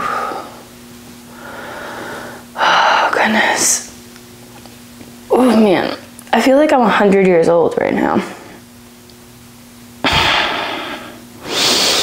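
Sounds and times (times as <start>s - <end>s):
woman breathing: 0.0s - 0.7s, 1.3s - 3.1s, 10.0s - 12.0s.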